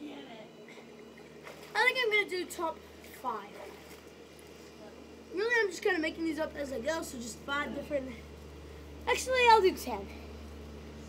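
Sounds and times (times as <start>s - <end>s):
low constant hum: 0.0s - 11.0s.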